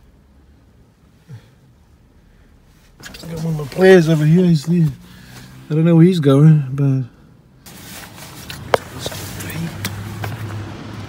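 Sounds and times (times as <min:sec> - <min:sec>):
low engine hum: 0:00.0 - 0:11.0
tyres hissing on wet road: 0:07.7 - 0:11.0.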